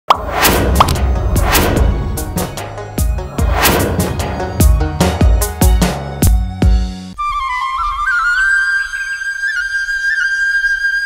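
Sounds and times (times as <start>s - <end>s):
rising pop: 0.1s - 5.2s
swishes: 0.2s - 4.8s
electronic intro music: 0.2s - 7.1s.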